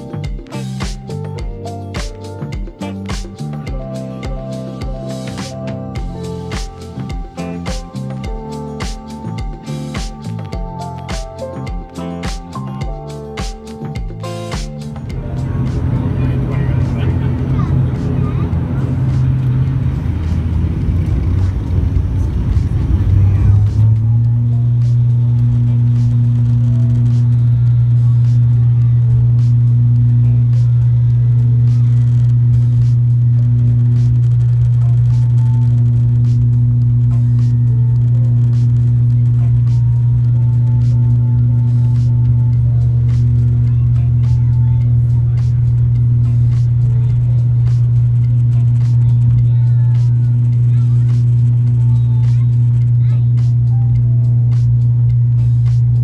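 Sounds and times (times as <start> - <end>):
turboprop engine and propeller drone: 14.8 - 56.0.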